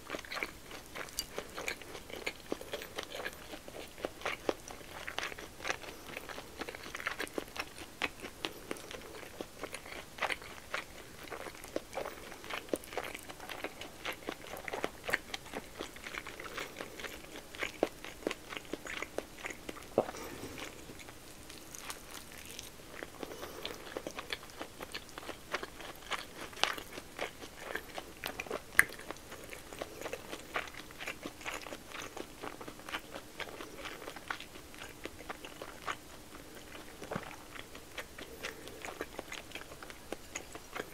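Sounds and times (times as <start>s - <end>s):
person chewing: 0.0s - 40.9s.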